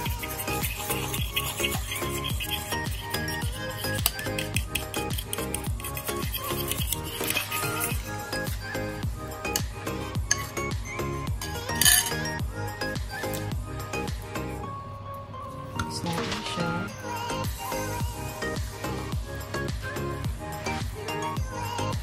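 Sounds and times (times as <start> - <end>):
background music with steady beat: 0.0 - 22.0
metal spoon clinking against bowl: 11.4 - 12.4.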